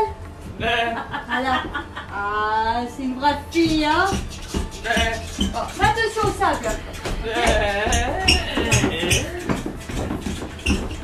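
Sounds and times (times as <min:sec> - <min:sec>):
footsteps on wooden floor: 0:03.5 - 0:11.0
sharp knocks: 0:03.6 - 0:11.0.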